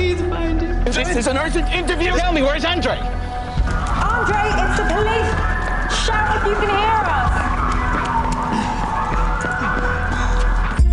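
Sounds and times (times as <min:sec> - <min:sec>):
police siren wailing: 0:03.0 - 0:10.8.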